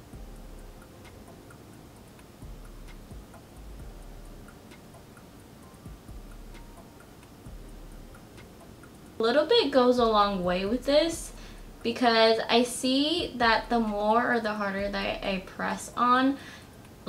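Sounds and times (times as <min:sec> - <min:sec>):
quick ticking beat: 0:00.0 - 0:17.0
soft background music: 0:00.0 - 0:17.0.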